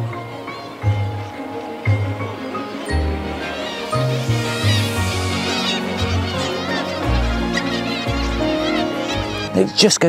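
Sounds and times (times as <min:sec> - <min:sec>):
held chords: 0:00.0 - 0:09.8.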